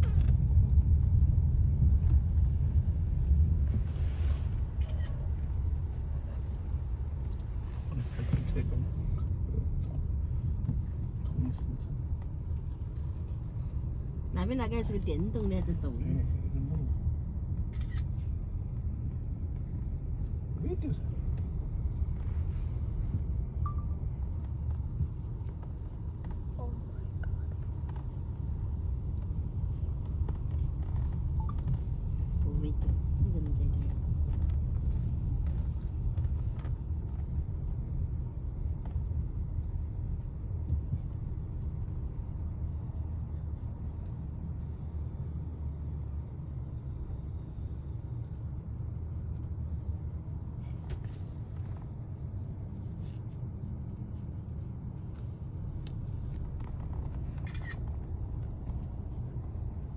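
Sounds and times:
car driving rumble from inside: 0.0 - 59.9.

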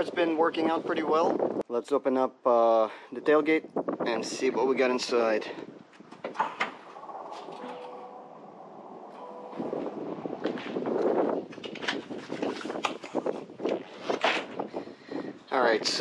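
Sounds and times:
wind gusting on microphone: 0.0 - 1.7, 3.2 - 16.0
faint hum: 6.7 - 11.5.

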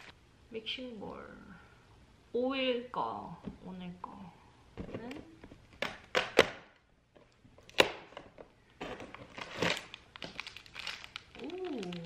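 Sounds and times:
cardboard packaging rustle: 8.8 - 12.0.

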